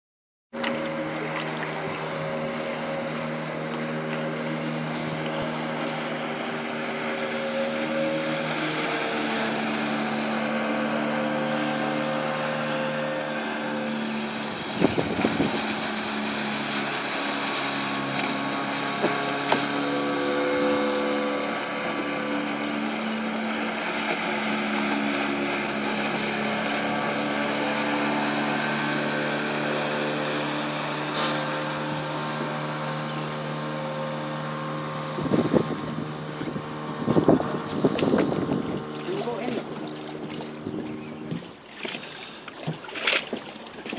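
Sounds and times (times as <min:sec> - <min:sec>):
motorboat engine: 0:00.5 - 0:43.9
wind on microphone: 0:14.1 - 0:16.1, 0:34.8 - 0:41.5.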